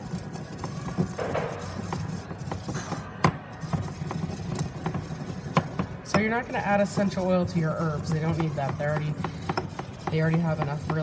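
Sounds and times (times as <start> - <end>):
pestle grinding in a mortar: 0.0 - 11.0
pestle knocking against bowl: 0.6 - 11.0.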